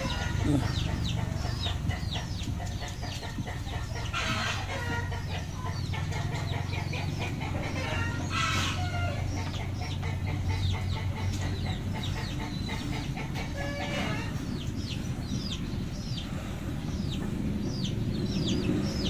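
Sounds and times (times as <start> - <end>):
chicks peeping: 0.0 - 19.0
hens clucking: 0.0 - 19.0.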